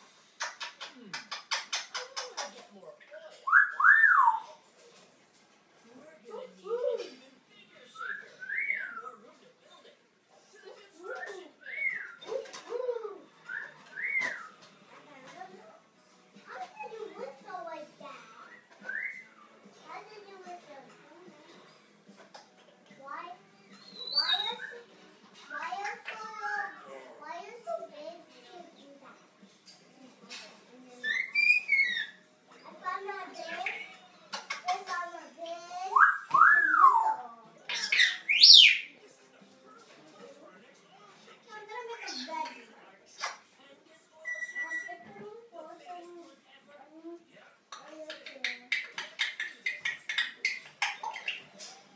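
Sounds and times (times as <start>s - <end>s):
parrot whistling: 3.5s - 4.5s, 18.5s - 19.4s, 23.8s - 24.8s, 31.0s - 32.2s, 35.9s - 37.2s, 44.2s - 44.9s
parrot high whistles: 31.1s - 32.2s, 44.2s - 44.9s.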